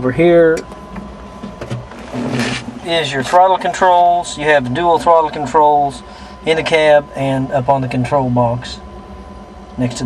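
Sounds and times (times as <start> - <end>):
man speaking: 0.0 - 0.6, 2.8 - 8.8, 9.8 - 10.0
low engine drone: 0.0 - 10.0.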